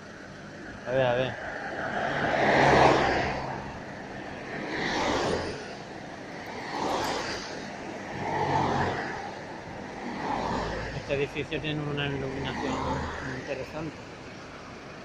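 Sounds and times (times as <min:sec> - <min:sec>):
cars passing: 0:00.0 - 0:15.0.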